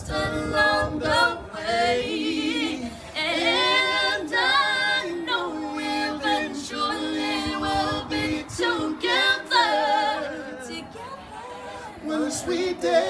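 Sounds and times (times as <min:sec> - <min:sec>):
men singing harmony: 0:00.0 - 0:13.0.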